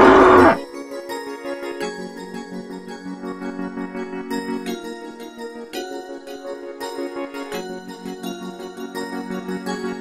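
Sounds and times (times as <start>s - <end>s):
hoarse animal call: 0.0s - 0.6s.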